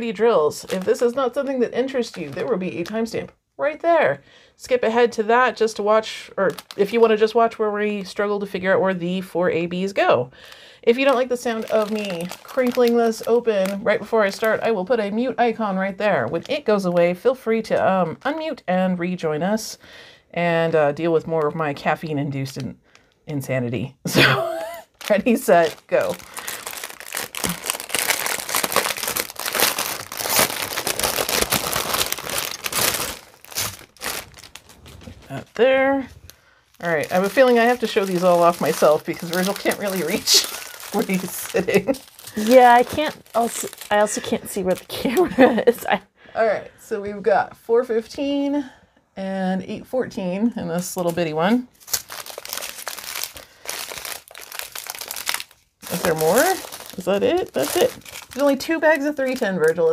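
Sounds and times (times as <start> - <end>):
plastic bag crinkling: 0.0 - 3.3, 6.4 - 7.2, 10.4 - 14.6, 24.8 - 45.7, 51.7 - 59.9.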